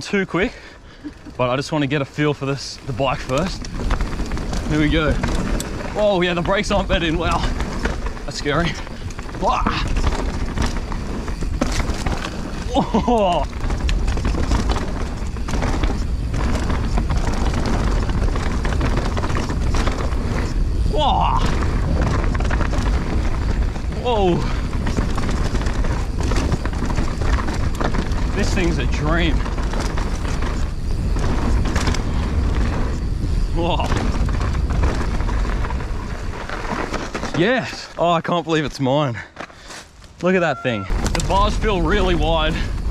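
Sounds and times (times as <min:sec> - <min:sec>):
bike tyres rolling on dirt: 0:00.0 - 0:42.9
wind rushing on microphone: 0:01.0 - 0:37.8, 0:40.5 - 0:42.9
small knocks from trail: 0:03.0 - 0:20.8, 0:21.4 - 0:38.1, 0:40.9 - 0:42.9.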